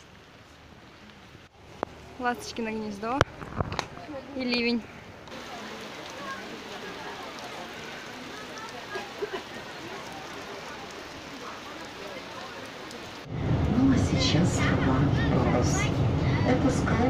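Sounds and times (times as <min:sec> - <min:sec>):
heavy rain hiss: 0:00.0 - 0:17.0
raindrop taps: 0:03.0 - 0:13.8.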